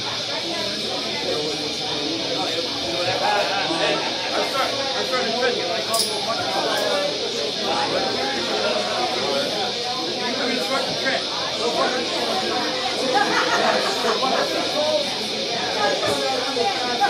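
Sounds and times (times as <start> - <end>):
crowd chatter: 0.0 - 17.0
steady high hiss: 0.0 - 17.0.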